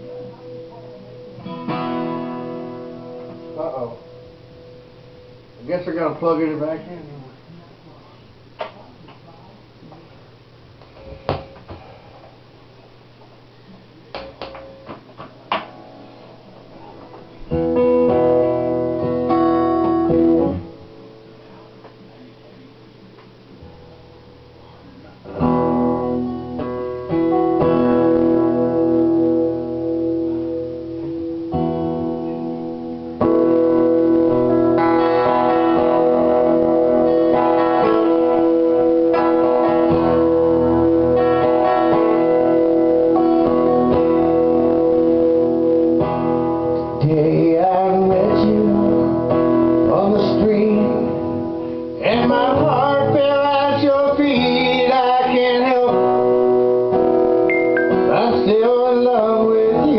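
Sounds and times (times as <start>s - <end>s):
acoustic guitar strumming: 0.0s - 6.8s, 14.3s - 22.0s, 23.6s - 59.9s
man singing: 46.8s - 56.6s, 57.9s - 59.9s.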